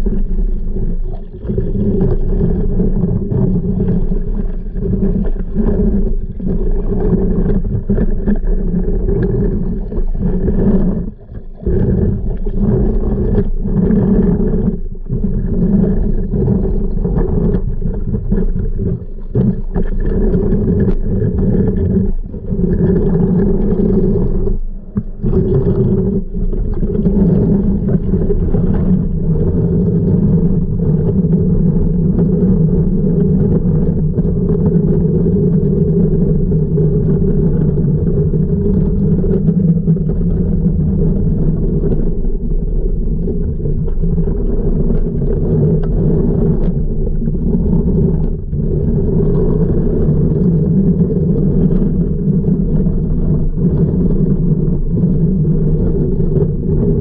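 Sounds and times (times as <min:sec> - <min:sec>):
pool vacuum suction underwater: 0:00.0 - 0:57.0.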